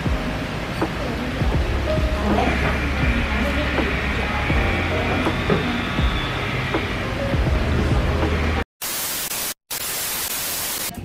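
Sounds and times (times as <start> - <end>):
static white-noise hiss: 0.0 - 11.0.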